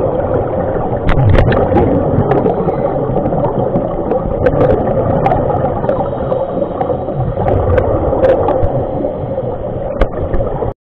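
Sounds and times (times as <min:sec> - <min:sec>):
underwater regulator bubbles: 0:00.0 - 0:10.7.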